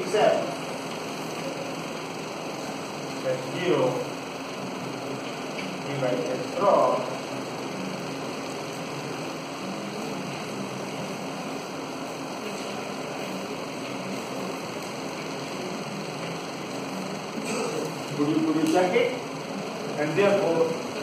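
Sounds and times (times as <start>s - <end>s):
electric fan hum: 0.0s - 21.0s.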